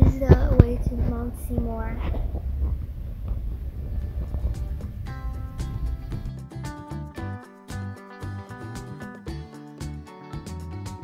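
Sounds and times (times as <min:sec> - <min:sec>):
faint music: 0:00.0 - 0:11.0.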